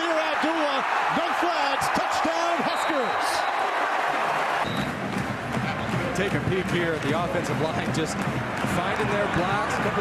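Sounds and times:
stadium crowd cheering: 0.0s - 10.0s.

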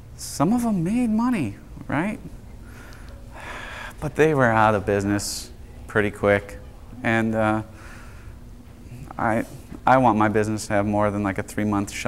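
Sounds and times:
man speaking: 0.2s - 2.4s, 3.9s - 7.8s, 8.9s - 12.0s
intake of breath: 2.6s - 4.0s, 7.7s - 8.4s.

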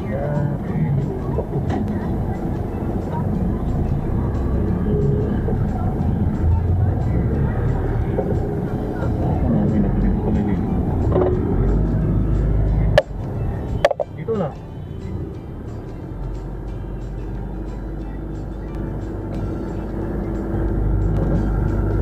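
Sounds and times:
voices: 0.0s - 19.8s
music: 0.0s - 22.0s
vehicle rumbling: 0.0s - 22.0s
sharp knocks: 13.8s - 14.1s.

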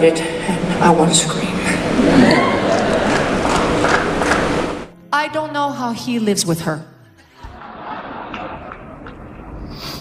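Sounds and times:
audience applauding and cheering: 1.8s - 4.9s, 7.4s - 9.7s.

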